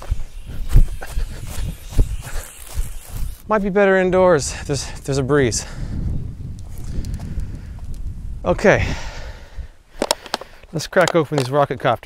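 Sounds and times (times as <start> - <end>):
wind buffeting microphone: 0.0 - 10.4.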